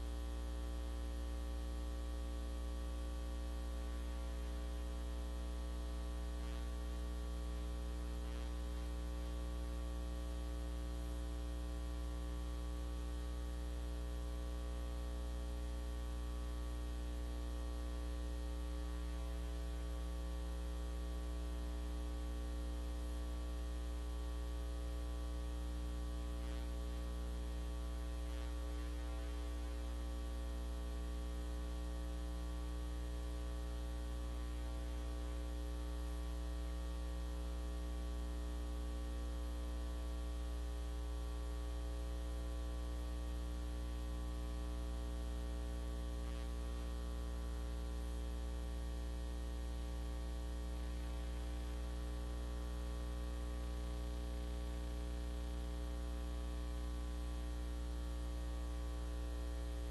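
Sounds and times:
electrical mains hum: 0.0 - 59.9.

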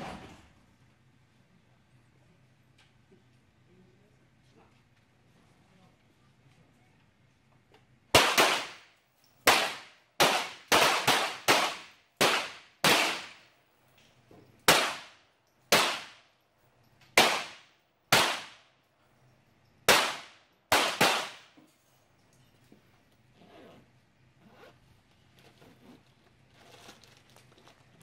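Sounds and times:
pistol shots with echo: 8.1 - 8.9, 9.5 - 13.5, 14.7 - 16.2, 17.2 - 18.7, 19.9 - 21.5.

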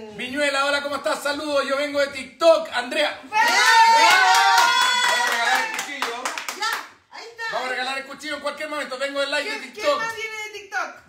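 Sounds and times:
people shouting excitedly: 3.3 - 5.7
people clapping: 3.4 - 7.0.

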